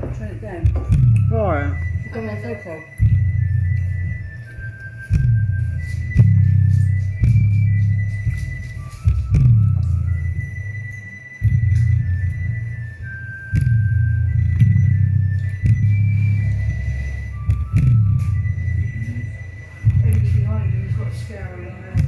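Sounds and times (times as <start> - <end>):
deep bass notes dropping in pitch: 0.6 - 10.6, 11.4 - 22.0
thin high melody: 0.8 - 22.0.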